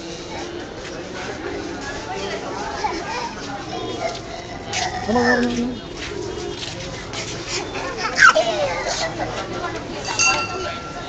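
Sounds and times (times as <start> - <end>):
chatter and babble: 0.0 - 11.0.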